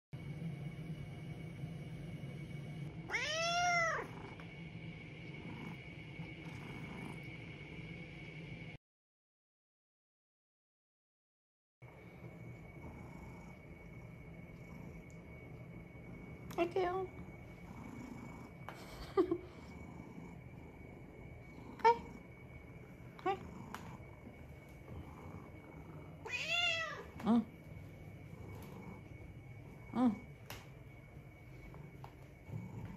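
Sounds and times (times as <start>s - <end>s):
cat meowing: 3.1s - 4.1s, 26.2s - 27.1s.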